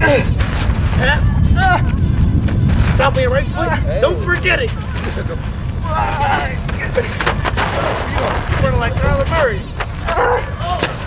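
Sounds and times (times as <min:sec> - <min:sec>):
wind buffeting microphone: 0:00.0 - 0:11.0
man laughing or shouting: 0:04.9 - 0:07.4.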